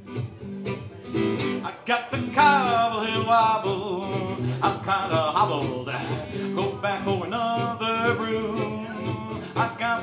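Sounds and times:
strummed acoustic guitar: 0.0 - 10.0
man singing country song: 1.0 - 10.0.

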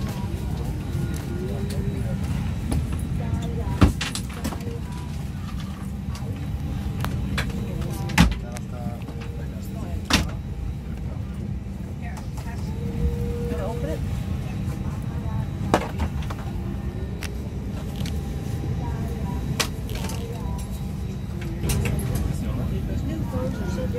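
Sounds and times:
airliner cabin rumble: 0.0 - 23.9
faint voices: 0.0 - 23.9.

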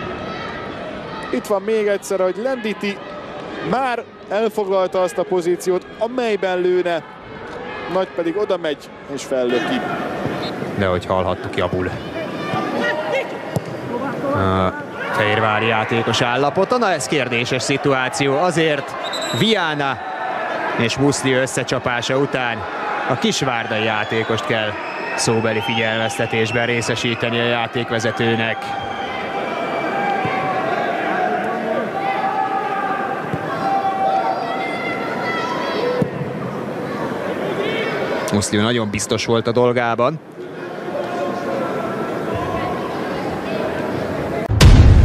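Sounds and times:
stadium crowd noise: 0.0 - 45.0
voices calling and talking: 0.9 - 44.5
man commentating: 14.0 - 20.0.

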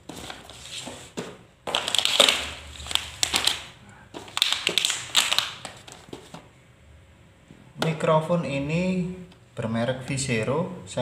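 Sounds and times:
packaging rustling and crinkling: 0.0 - 6.5.

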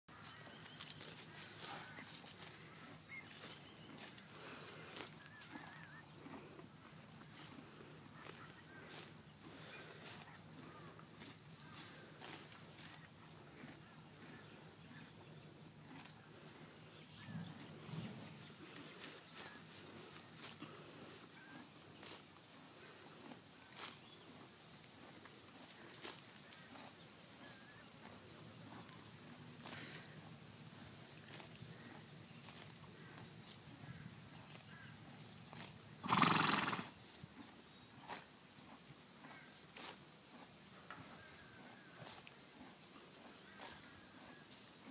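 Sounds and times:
pony tearing and chewing grass: 0.1 - 9.2, 10.0 - 15.0, 15.8 - 16.7, 17.6 - 28.9, 42.0 - 42.9
high insect buzz: 7.3 - 13.6, 17.0 - 44.9
pony snorting: 35.6 - 37.0.

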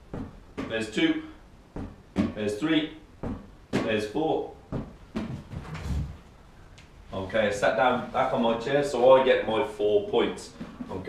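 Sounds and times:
person dropping onto chair: 4.8 - 6.2.

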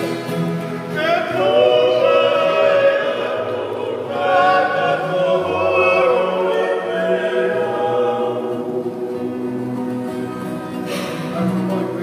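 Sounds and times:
acoustic guitar: 0.0 - 12.0
men singing in harmony: 0.9 - 10.0.

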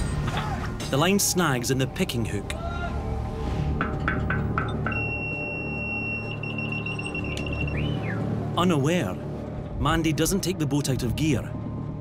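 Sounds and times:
electronic buzzer tone: 4.9 - 7.8.

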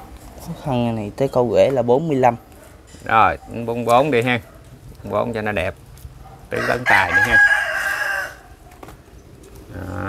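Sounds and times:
rooster crowing: 6.5 - 8.6.

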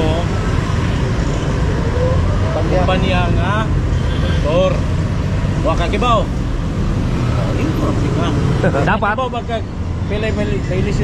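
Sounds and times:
street traffic rumble: 0.0 - 11.0.

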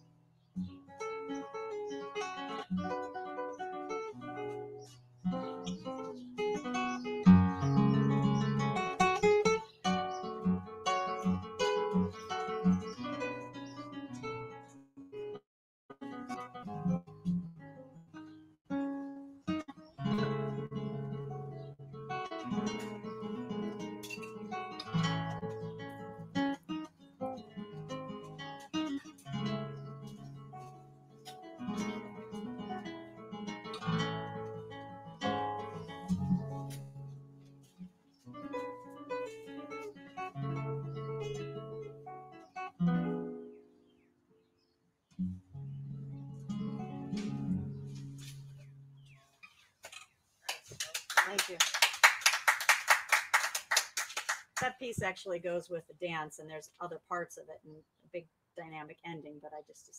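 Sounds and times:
solo classical guitar: 0.0 - 49.2.

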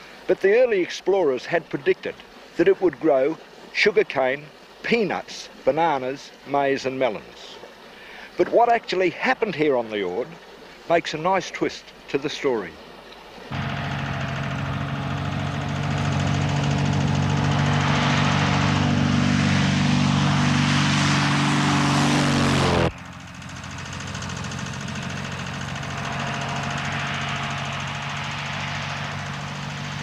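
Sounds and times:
plane piston engine drone: 13.5 - 30.0.

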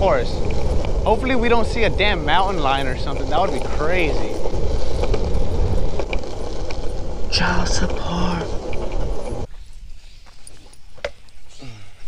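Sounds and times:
skateboard wheels rolling on asphalt: 0.0 - 11.4.

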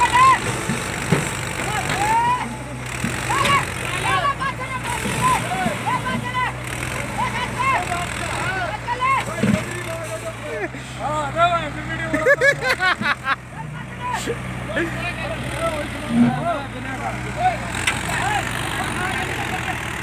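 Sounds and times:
men talking: 0.0 - 20.0
tractor diesel engine idling: 0.0 - 20.0.

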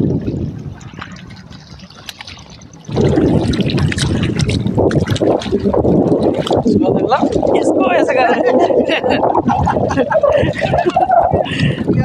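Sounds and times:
water splashing against stones: 0.0 - 8.1
hand swishing through water: 2.0 - 7.8
voices: 6.7 - 9.6.

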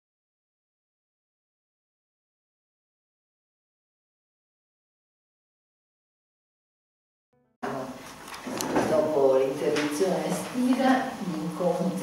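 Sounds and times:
woman talking through microphone: 8.7 - 12.0.

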